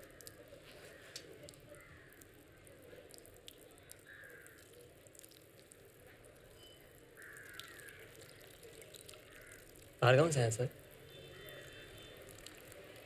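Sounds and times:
faint outdoor ambience: 0.0s - 13.0s
distant crow cawing: 1.8s - 2.2s, 4.0s - 4.7s, 7.2s - 8.1s, 9.2s - 9.8s.

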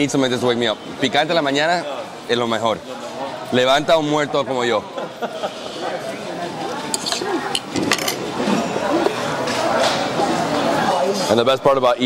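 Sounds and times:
background chatter of voices: 0.0s - 12.0s
fork clinking and scraping on plate: 6.8s - 9.2s.

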